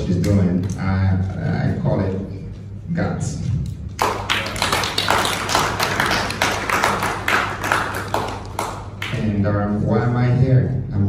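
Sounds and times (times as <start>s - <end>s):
audience applauding: 4.0s - 9.2s.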